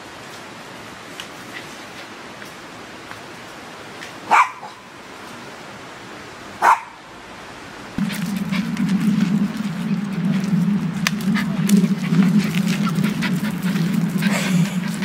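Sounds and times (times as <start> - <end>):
dog barking: 4.3 - 4.8, 6.6 - 7.0
steady low hum: 7.8 - 15.0.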